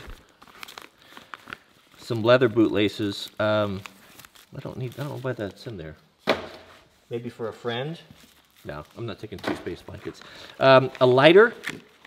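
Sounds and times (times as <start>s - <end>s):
plastic bag crinkling: 0.0s - 6.0s, 7.7s - 12.0s.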